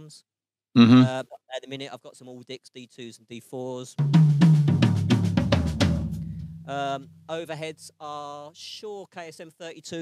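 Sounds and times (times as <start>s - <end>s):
drum fill on toms: 4.0s - 7.4s.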